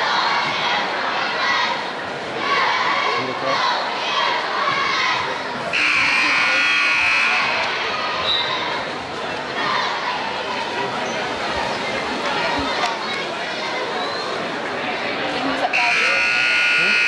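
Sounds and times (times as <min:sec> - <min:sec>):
crowd chatter: 0:00.0 - 0:17.0
scoreboard buzzer: 0:05.7 - 0:07.7, 0:15.7 - 0:17.0.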